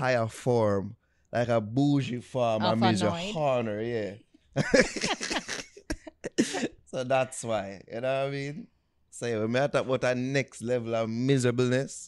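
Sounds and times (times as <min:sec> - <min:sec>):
person laughing: 0:04.6 - 0:06.8
person coughing: 0:06.3 - 0:06.8.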